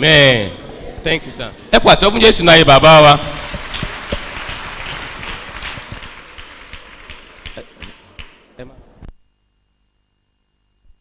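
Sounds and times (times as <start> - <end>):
congregation clapping: 2.7 - 8.5.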